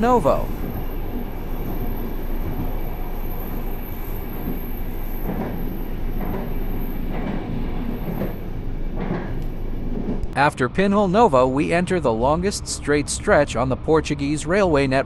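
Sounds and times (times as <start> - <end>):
train wheels rolling on rails: 0.0 - 10.4.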